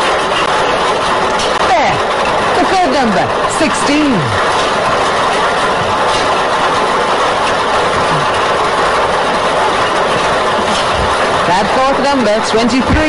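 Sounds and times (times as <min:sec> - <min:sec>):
lottery balls clattering: 0:00.0 - 0:13.0.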